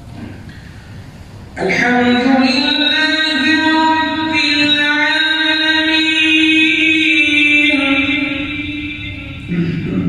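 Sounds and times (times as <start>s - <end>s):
man chanting melodically: 1.6s - 10.0s.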